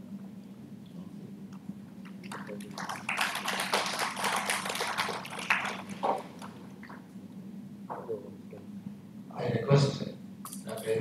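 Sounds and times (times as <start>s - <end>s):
low hall hum: 0.0s - 11.0s
audience applauding: 2.0s - 7.0s.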